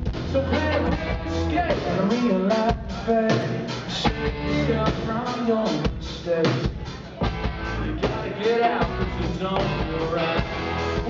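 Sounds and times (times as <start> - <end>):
electric guitars: 0.0 - 5.4, 7.2 - 11.0
drum kit: 0.0 - 11.0.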